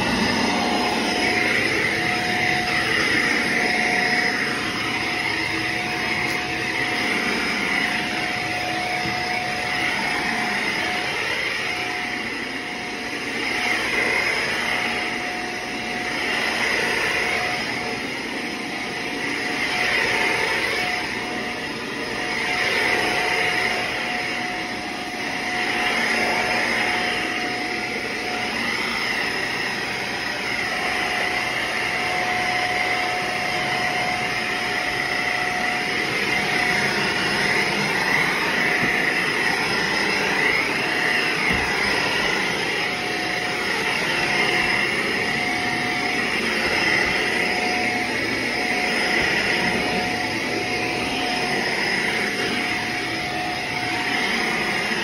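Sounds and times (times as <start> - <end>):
vacuum cleaner running on carpet: 0.0 - 55.0.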